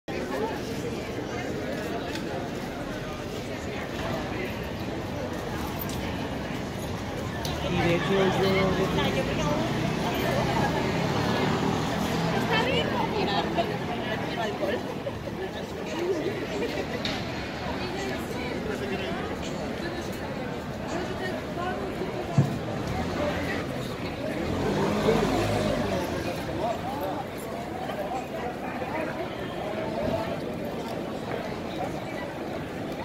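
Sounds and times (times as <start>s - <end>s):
indistinct voices of passers-by: 0.1s - 33.0s
low street rumble: 0.1s - 33.0s
traffic hum: 1.9s - 33.0s.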